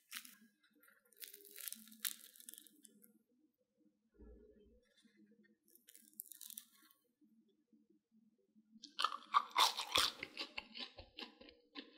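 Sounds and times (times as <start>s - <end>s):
crunchy chewing: 0.0s - 2.9s, 5.7s - 6.9s, 8.8s - 11.9s.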